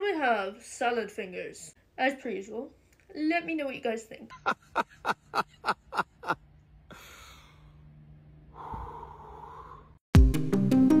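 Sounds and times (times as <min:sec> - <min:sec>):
person breathing: 0:06.9 - 0:07.9, 0:08.5 - 0:10.0.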